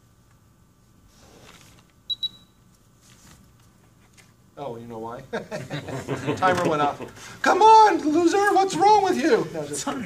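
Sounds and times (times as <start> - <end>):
soft rustle: 2.7 - 4.4.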